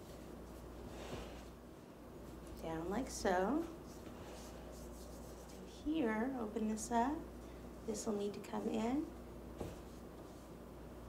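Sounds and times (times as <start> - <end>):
low steady hum: 0.0 - 11.0
hands rubbing fondant: 3.4 - 5.8.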